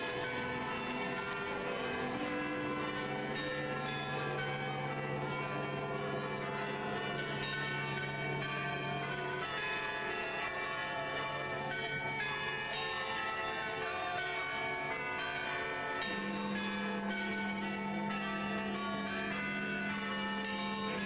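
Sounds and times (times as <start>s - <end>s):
church bells pealing: 0.0s - 21.0s.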